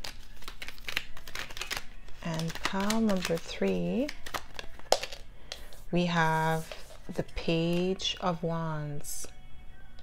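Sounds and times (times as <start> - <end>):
cards clicking and flicking: 0.0 - 5.7.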